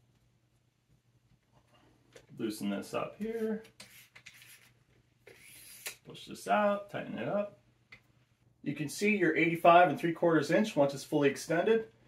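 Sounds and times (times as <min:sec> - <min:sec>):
tube sliding with rubbing rasp: 0:03.8 - 0:06.0.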